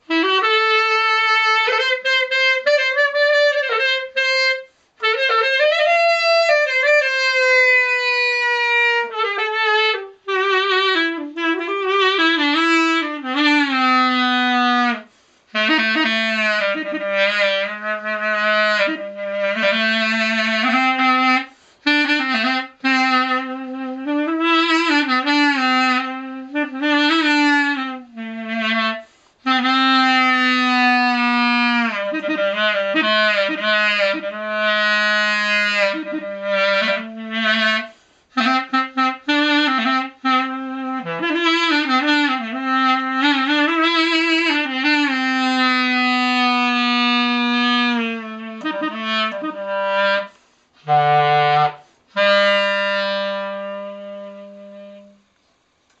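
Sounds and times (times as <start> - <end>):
clarinet holding long note: 0.0 - 55.3.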